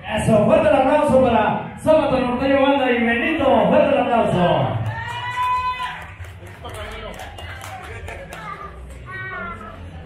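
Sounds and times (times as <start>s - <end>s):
crowd applause: 4.8s - 9.1s.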